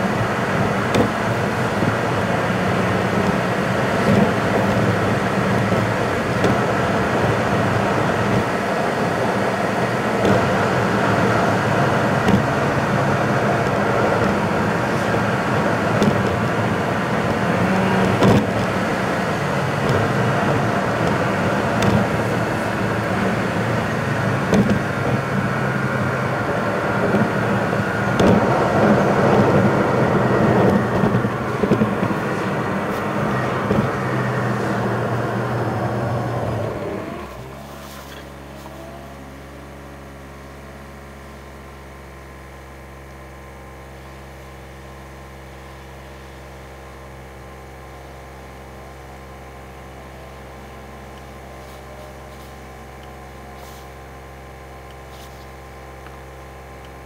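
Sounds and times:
car engine and tyre noise: 0:00.0 - 0:57.0.

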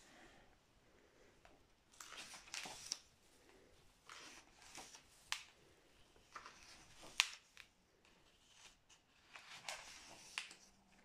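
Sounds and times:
book page turning: 0:01.9 - 0:03.1, 0:04.0 - 0:05.6, 0:06.2 - 0:11.0.

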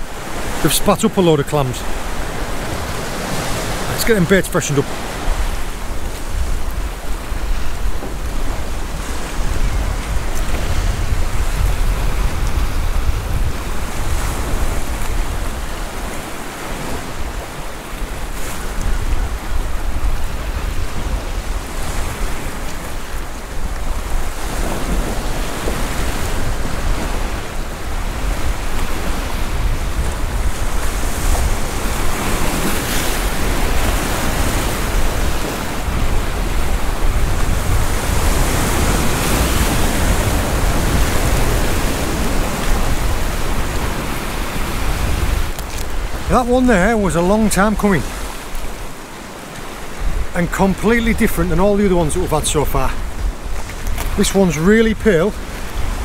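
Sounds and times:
waves breaking on rocks: 0:00.0 - 0:56.0
wind rumble on microphone: 0:04.9 - 0:46.6, 0:48.0 - 0:50.5, 0:52.8 - 0:54.2, 0:54.8 - 0:56.0.

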